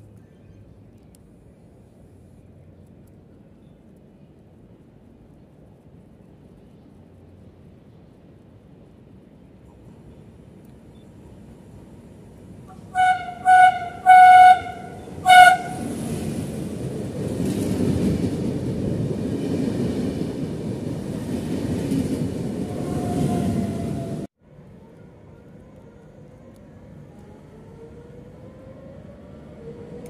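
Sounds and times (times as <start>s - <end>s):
train rumbling past: 6.4s - 30.0s
train horn blasts: 12.7s - 16.0s.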